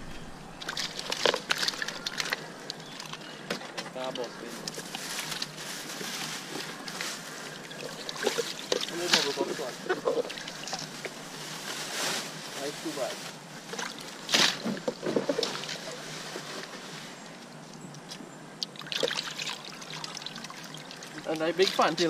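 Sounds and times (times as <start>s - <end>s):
hands splashing water in bucket: 0.6s - 3.3s, 7.7s - 11.1s, 18.7s - 22.0s.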